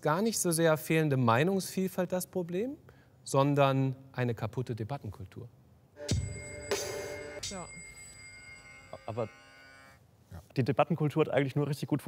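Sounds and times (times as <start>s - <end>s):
ringing chime-like music sting: 6.0s - 9.5s.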